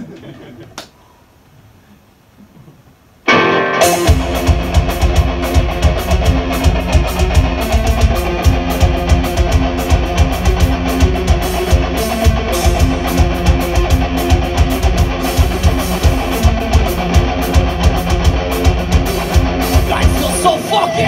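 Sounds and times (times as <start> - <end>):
distorted electric guitars: 3.2 - 21.0
driving drum beat: 3.8 - 21.0.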